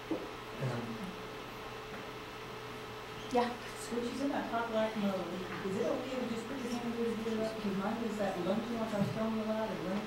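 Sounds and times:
faint constant hum: 0.0 - 10.0.

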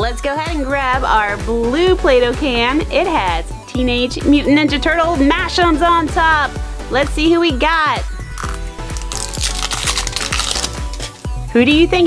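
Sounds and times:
background music with steady beat: 0.0 - 12.0
plastic shrink-wrap crinkling: 8.4 - 11.3.

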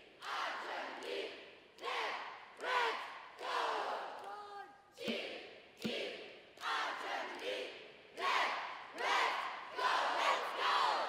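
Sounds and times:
cheerleaders shouting in unison: 6.6 - 11.0.

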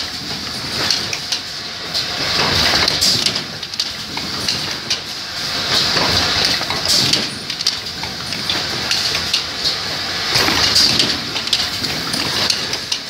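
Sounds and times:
machine hissing: 0.0 - 13.0.

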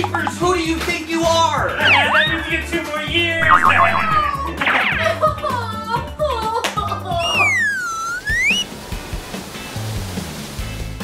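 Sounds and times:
swooping whistle-like tone: 1.7 - 2.6, 3.4 - 5.3, 7.2 - 8.7
background music with bass line: 3.4 - 6.4.

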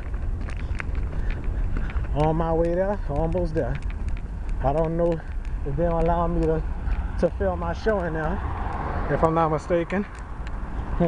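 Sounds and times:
light ticks: 0.0 - 9.4, 10.0 - 10.6
traffic rumble: 0.0 - 11.0.

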